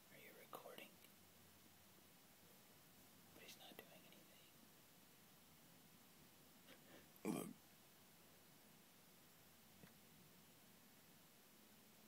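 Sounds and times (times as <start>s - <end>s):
faint whispers: 0.0s - 1.1s, 3.3s - 4.6s.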